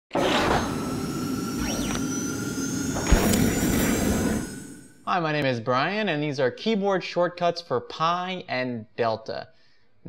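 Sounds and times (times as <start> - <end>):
pitch sweep up and down: 0.2 - 5.0
sharp hit: 0.2 - 5.0.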